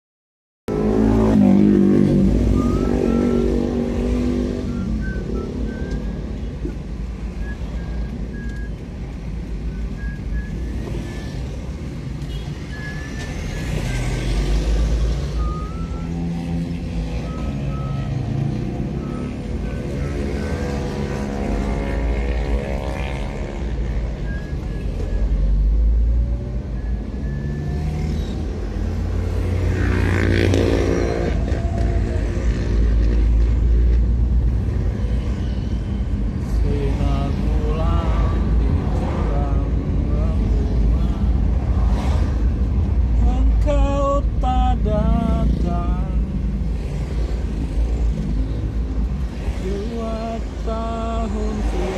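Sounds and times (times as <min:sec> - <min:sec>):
road traffic rumble: 0:00.7 - 0:51.9.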